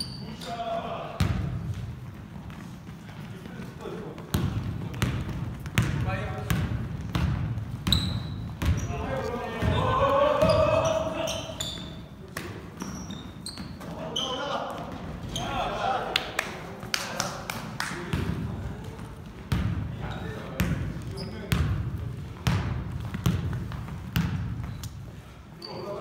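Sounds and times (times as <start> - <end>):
sneakers squeaking: 0.0 - 15.9, 18.1 - 26.0
basketball bouncing on hardwood: 4.3 - 9.0, 21.5 - 24.8
players calling out: 7.9 - 19.1.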